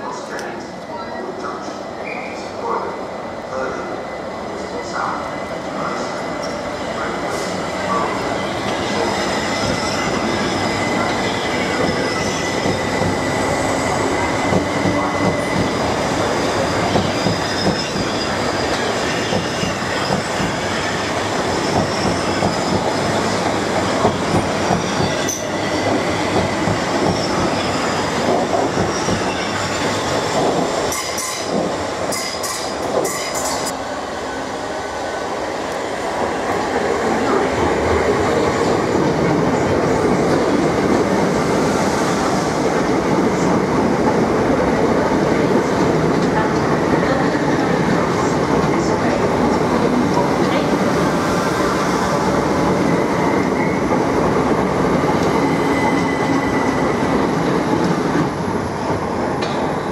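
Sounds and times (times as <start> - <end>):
train wheels rumbling on rails: 5.0 - 33.8, 35.2 - 59.9.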